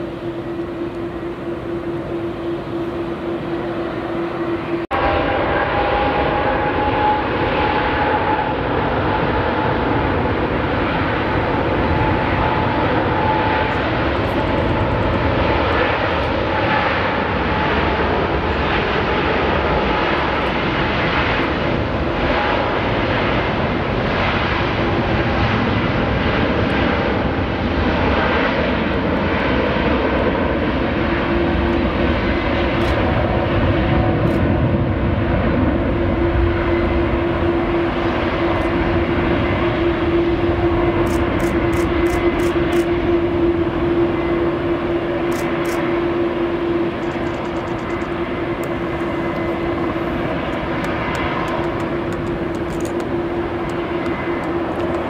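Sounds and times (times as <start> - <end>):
loud jet engine noise: 0.0 - 55.0.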